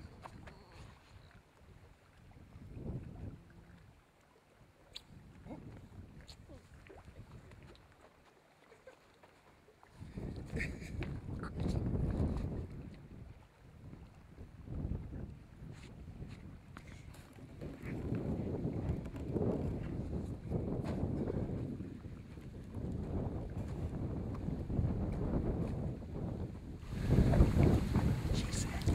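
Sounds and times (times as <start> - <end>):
wind buffeting microphone: 2.3 - 3.8, 10.0 - 28.9.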